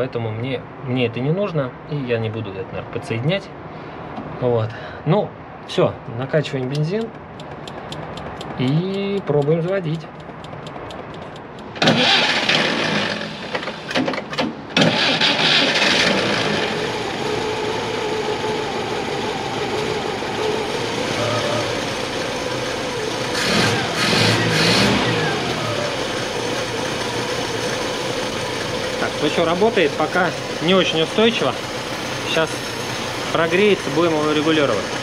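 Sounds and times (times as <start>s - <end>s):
car engine starting and idling: 6.6s - 35.0s
engine revving: 11.7s - 14.0s, 14.8s - 35.0s.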